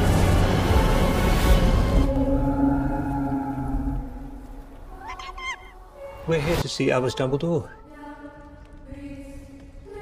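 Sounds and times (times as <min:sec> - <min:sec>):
music: 0:00.0 - 0:10.0
small creature squeaky mewing: 0:05.0 - 0:05.8.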